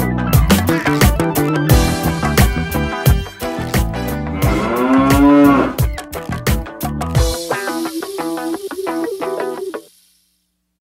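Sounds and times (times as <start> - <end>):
music with beat and plucked notes: 0.0 - 10.0
cow mooing: 4.3 - 5.8.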